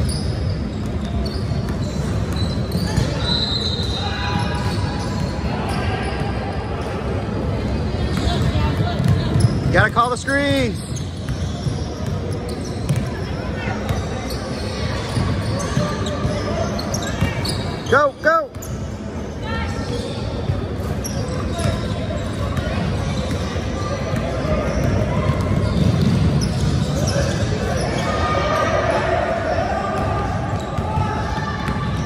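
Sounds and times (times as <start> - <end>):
sneakers squeaking: 0.0 - 32.0.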